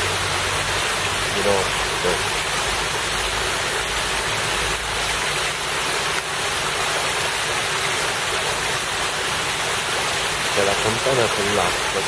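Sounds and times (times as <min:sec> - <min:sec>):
water splashing in a fountain: 0:00.0 - 0:12.0.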